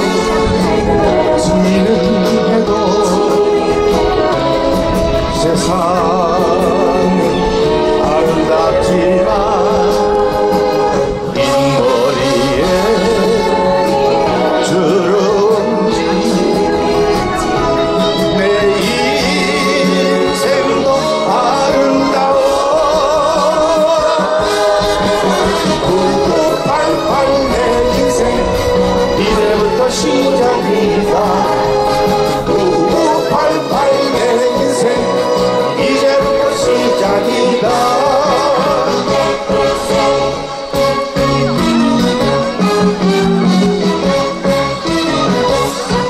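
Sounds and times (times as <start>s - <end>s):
man singing into microphone: 0.0s - 44.2s
orchestra with brass and strings: 0.0s - 46.0s.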